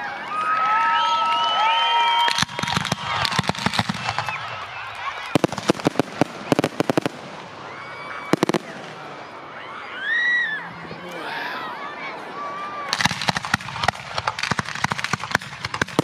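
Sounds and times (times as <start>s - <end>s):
fireworks crackling and banging: 0.6s - 9.4s, 12.9s - 16.0s.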